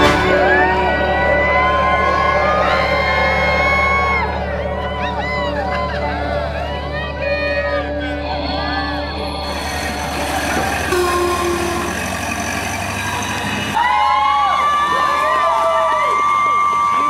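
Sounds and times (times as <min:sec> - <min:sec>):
crowd cheering: 0:00.0 - 0:17.0
car horn blast: 0:09.5 - 0:13.8.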